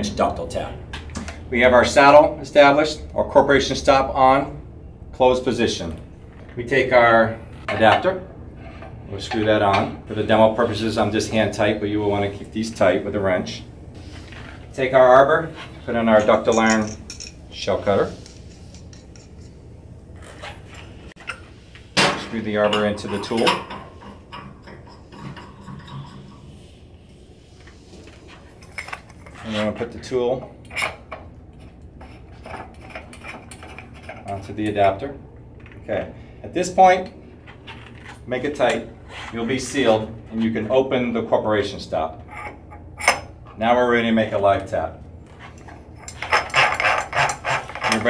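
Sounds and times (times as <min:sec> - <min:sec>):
metallic ticking and rubbing: 0:16.5 - 0:21.4, 0:22.6 - 0:26.7, 0:45.5 - 0:48.0.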